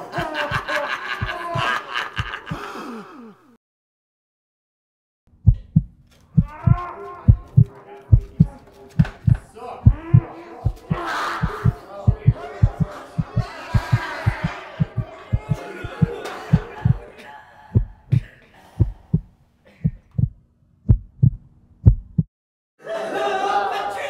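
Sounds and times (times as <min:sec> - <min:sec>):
overlapping voices: 0:00.0 - 0:03.5, 0:06.4 - 0:19.2
heartbeat thumps: 0:01.2 - 0:02.6, 0:05.3 - 0:17.1, 0:17.7 - 0:22.3.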